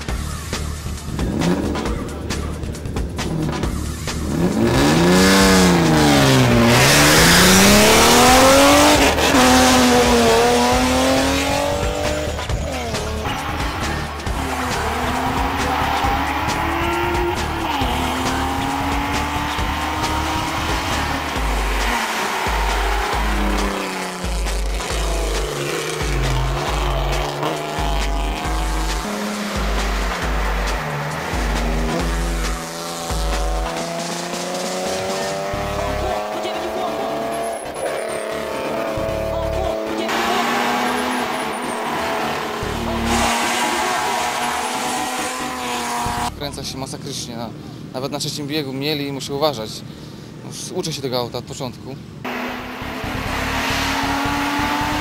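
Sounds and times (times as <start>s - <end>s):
background music with bass beat: 0.0s - 41.3s, 42.0s - 46.4s, 52.3s - 55.0s
race car engine revving: 0.0s - 46.4s, 52.2s - 55.0s
tyres squealing: 12.4s - 33.8s.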